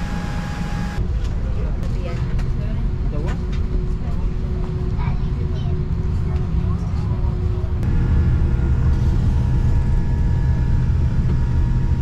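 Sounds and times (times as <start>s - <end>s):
faint passenger voices: 1.2s - 7.8s.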